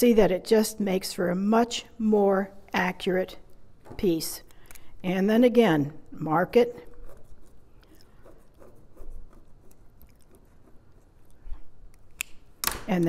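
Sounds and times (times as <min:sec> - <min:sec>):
pen scratching on fabric: 0:06.9 - 0:11.7.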